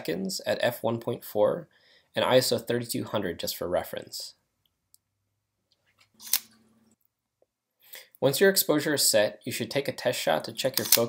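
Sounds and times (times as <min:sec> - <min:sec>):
sharp click: 0:10.7 - 0:11.0.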